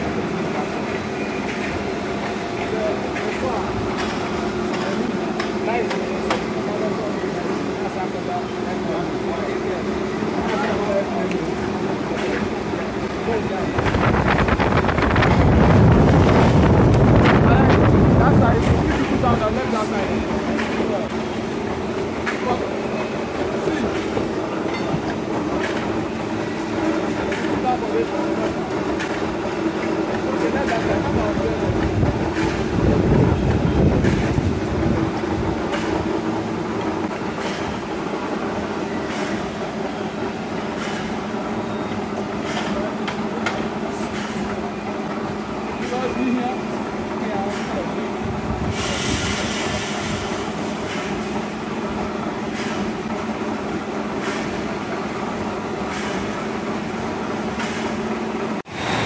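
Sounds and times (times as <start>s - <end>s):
machine clicks and clanks: 3.0s - 6.6s, 10.4s - 12.6s, 20.4s - 21.3s, 23.7s - 26.0s, 26.7s - 36.1s.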